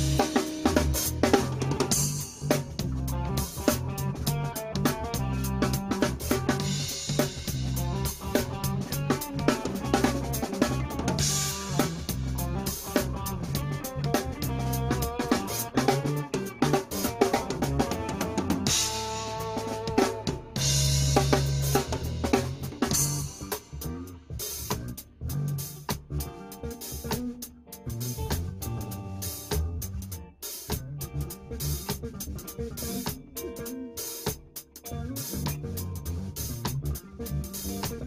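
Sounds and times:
sustained low bass notes: 0.0 - 27.2, 27.8 - 33.0, 34.9 - 38.0
drum kit playing steady beat: 0.0 - 38.0.

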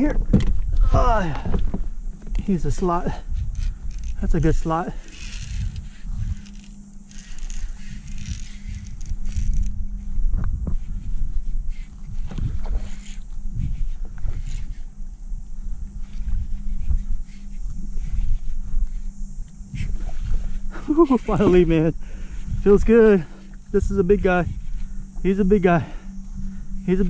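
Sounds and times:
wind on microphone: 0.0 - 25.3
steady low hum: 0.0 - 27.0.

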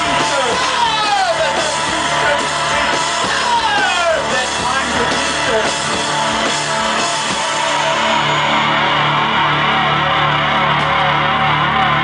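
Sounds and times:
drum kit: 0.0 - 12.0
electric guitar strummed hard: 0.0 - 12.0
live rock music: 0.0 - 12.0.

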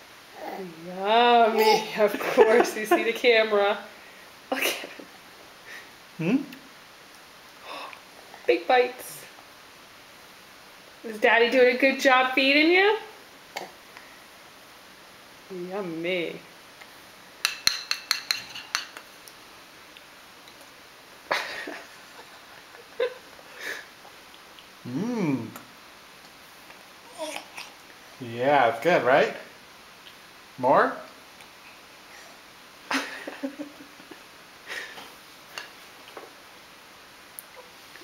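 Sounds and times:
spoon clinking against bowl: 17.4 - 19.0.

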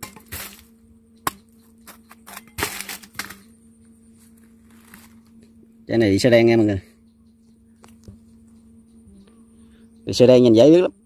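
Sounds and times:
knife scraping fruit: 0.0 - 0.7, 1.3 - 3.5
knife cutting through fruit: 1.3 - 3.4.

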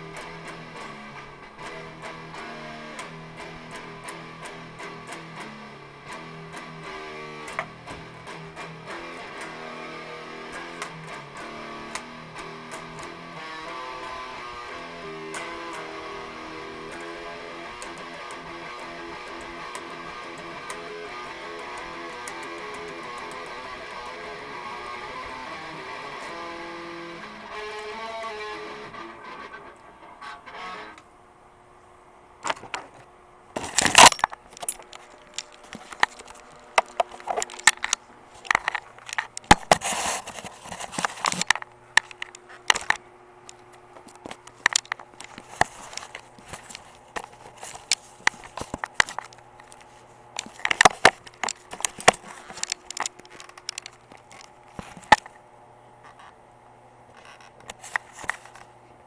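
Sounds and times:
electric guitar playing: 0.0 - 31.0.

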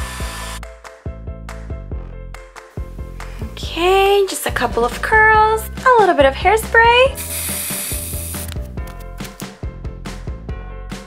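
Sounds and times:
aerosol hairspray hissing: 0.0 - 0.6, 7.1 - 8.6
background music with steady beat: 0.0 - 11.0.

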